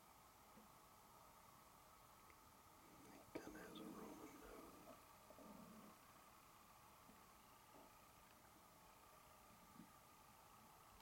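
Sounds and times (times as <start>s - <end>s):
person whispering: 3.0s - 5.0s.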